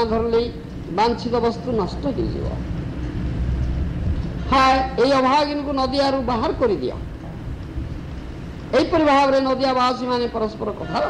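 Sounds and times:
low rumble: 0.0s - 10.8s.

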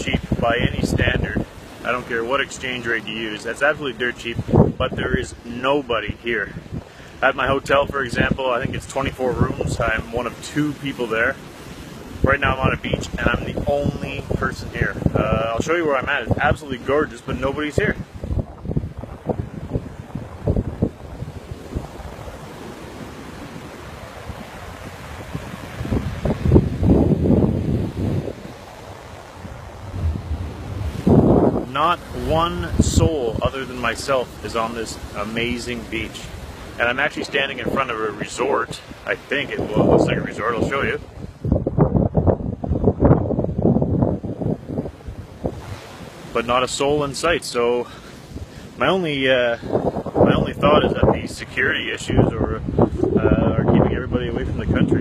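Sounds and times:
sea surf washing on beach: 0.0s - 55.0s
wind buffeting microphone: 0.0s - 55.0s.

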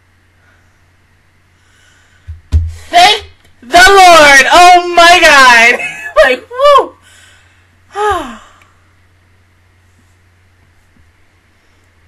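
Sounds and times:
soft breath: 1.5s - 3.0s, 7.0s - 8.9s
woman sighing: 7.9s - 8.7s.

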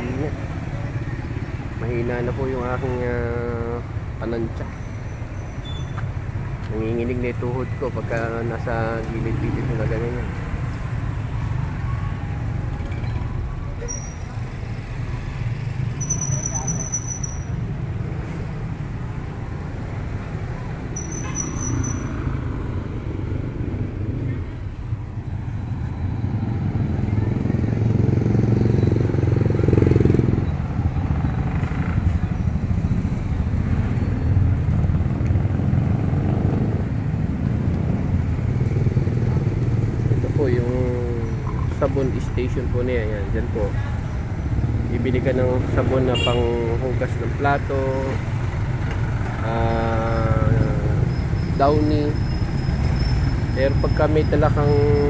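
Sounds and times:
motorcycle engines passing: 0.0s - 55.0s
street traffic: 0.0s - 55.0s
high-pitched chirps: 16.0s - 17.6s, 21.0s - 22.2s.

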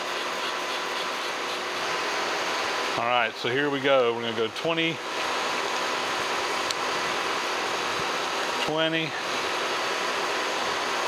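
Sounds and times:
milling machine humming: 0.0s - 11.0s.

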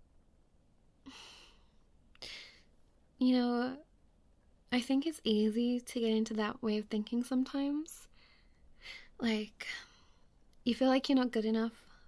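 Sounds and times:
woman sighing softly: 1.0s - 2.6s.

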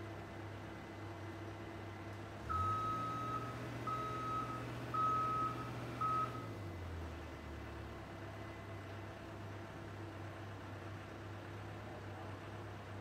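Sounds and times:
diesel engine running: 0.0s - 13.0s
warning alarm beeps: 2.5s - 6.4s.

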